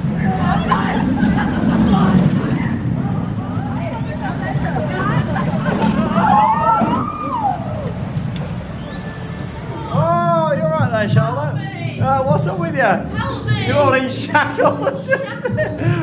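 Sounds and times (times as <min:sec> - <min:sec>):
roller coaster rumbling on track: 0:00.0 - 0:16.0.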